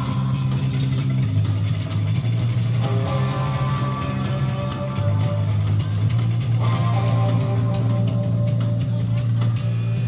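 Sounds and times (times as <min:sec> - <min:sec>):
bass guitar long low notes: 0:00.0 - 0:10.0
punk band playing instrumental: 0:00.0 - 0:10.0.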